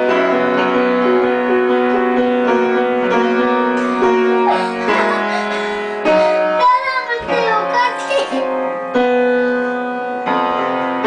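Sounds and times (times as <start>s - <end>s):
upright piano notes: 0.0s - 11.0s.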